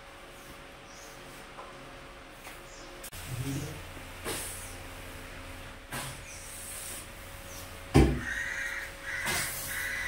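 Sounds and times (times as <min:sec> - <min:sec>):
crow cawing: 0:08.2 - 0:10.0.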